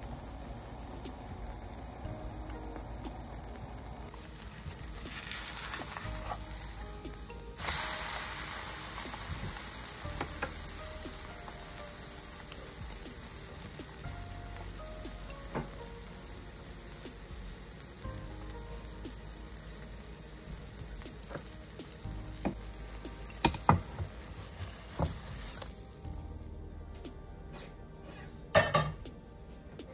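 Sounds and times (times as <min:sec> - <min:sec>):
omelette sizzling in frying pan: 0:00.0 - 0:26.6.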